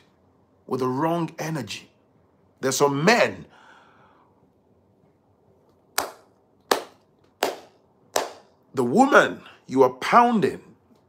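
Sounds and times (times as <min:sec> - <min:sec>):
sharp hand claps: 0:06.0 - 0:08.5.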